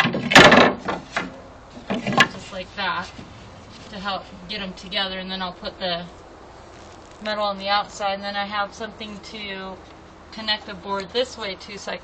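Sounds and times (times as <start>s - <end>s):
wooden boards knocking: 0.0s - 2.3s.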